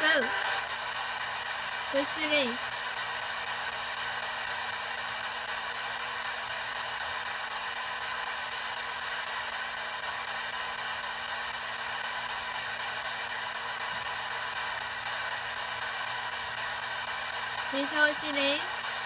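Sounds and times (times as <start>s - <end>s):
radio static hiss: 0.0s - 0.7s, 1.9s - 2.6s, 17.7s - 18.8s.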